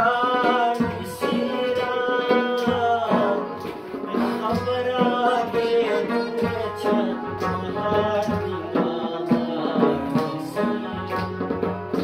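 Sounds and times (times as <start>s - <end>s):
man singing: 0.0s - 12.0s.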